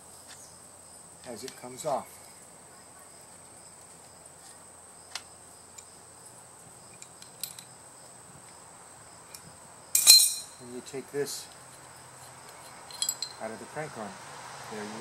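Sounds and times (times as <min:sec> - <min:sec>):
metallic clink: 0:06.9 - 0:07.8, 0:09.3 - 0:10.6, 0:12.5 - 0:13.4.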